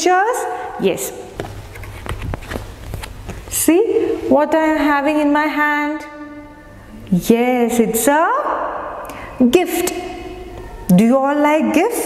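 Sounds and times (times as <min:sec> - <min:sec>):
woman speaking: 0:00.0 - 0:01.3, 0:03.5 - 0:06.3, 0:07.1 - 0:08.8, 0:09.4 - 0:12.0
paper card knocks and rustles: 0:01.4 - 0:03.4.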